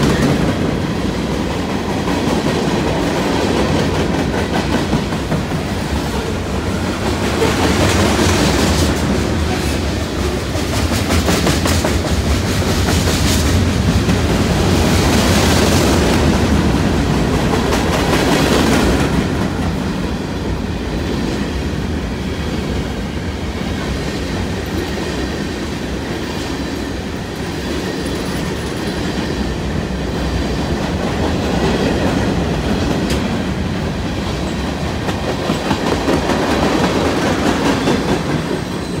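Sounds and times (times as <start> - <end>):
train wheels rolling on rails: 0.0 - 39.0.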